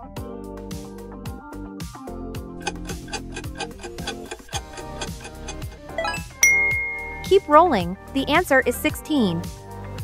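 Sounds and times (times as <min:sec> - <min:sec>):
clock-like ticking: 0:02.6 - 0:07.6
countdown timer music: 0:04.1 - 0:09.2.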